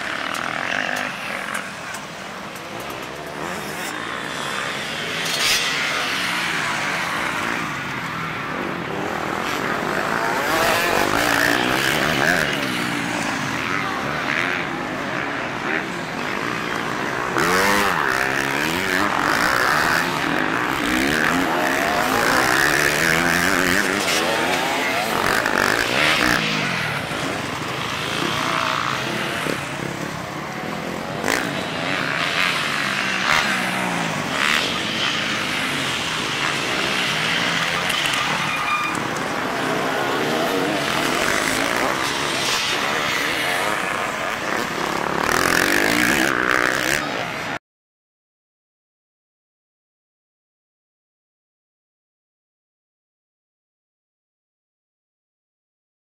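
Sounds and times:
dirt bike engines revving: 0:00.0 - 0:47.6.

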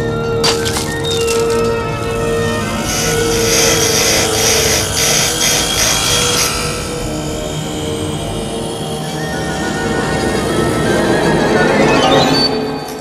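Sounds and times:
grinding wheel hissing: 0:02.5 - 0:10.4.

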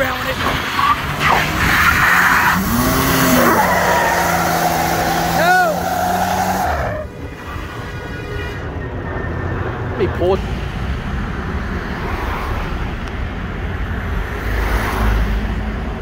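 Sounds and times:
truck engine revving: 0:00.0 - 0:07.1
tyre squealing: 0:00.5 - 0:07.1.

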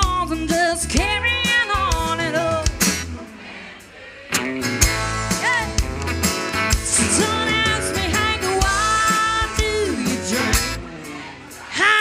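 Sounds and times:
live country band: 0:00.0 - 0:12.0
person singing: 0:06.9 - 0:10.8.

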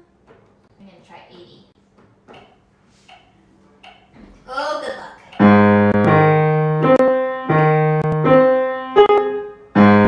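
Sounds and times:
person speaking: 0:03.8 - 0:05.4
piano chord ringing: 0:05.4 - 0:10.0.

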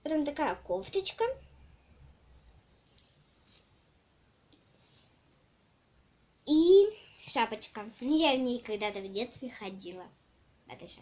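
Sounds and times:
doll clothes rustling: 0:02.2 - 0:04.0.

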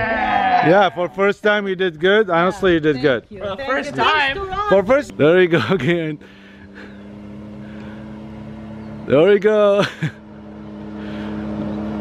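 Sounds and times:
dune buggy engine droning: 0:00.0 - 0:12.0.

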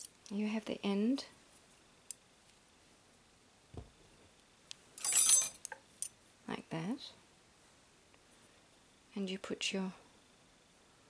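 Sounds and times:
soft knock: 0:03.7 - 0:04.0.

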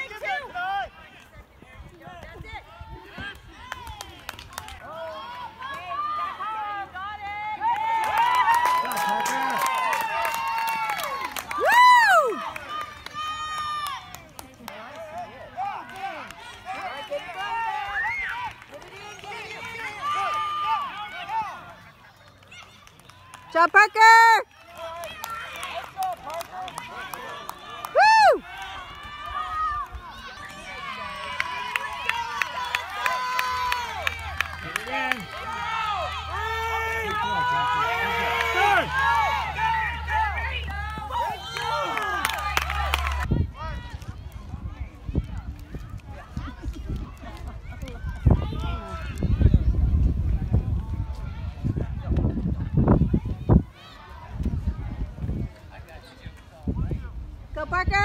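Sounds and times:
crowd voices chattering and calling: 0:00.0 - 0:08.0, 0:11.2 - 0:58.0
spectators shouting and cheering: 0:00.0 - 0:58.0.

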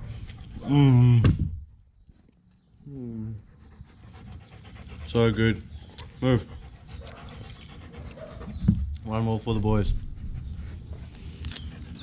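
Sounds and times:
bird chirping: 0:01.7 - 0:12.0.

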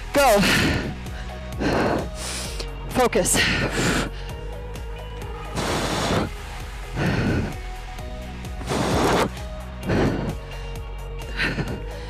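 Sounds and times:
background music: 0:00.0 - 0:12.0
person exhaling forcefully: 0:05.6 - 0:06.4, 0:07.0 - 0:07.6, 0:08.6 - 0:10.4.

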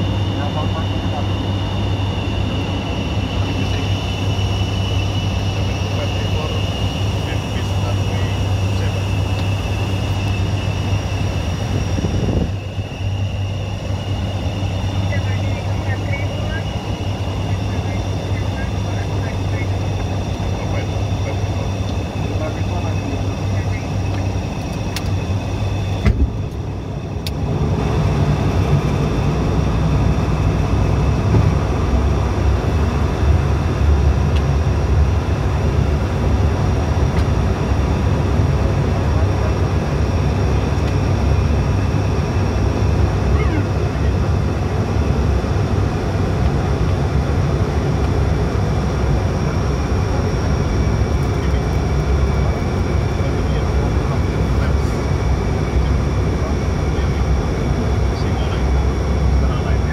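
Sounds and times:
turboprop engines droning: 0:00.0 - 0:59.9.

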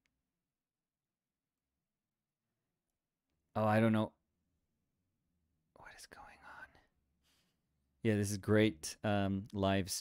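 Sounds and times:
person whispering: 0:05.7 - 0:06.9.

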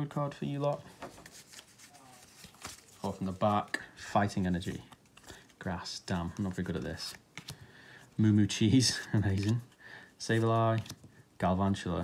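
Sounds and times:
cards rustling: 0:00.5 - 0:11.2.

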